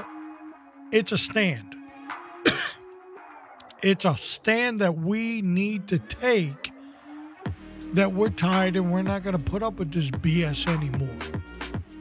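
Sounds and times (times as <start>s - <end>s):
background music with held notes: 0.0s - 12.0s
man speaking: 1.0s - 1.7s, 3.6s - 6.7s, 7.9s - 11.3s
man clearing throat: 2.4s - 2.9s.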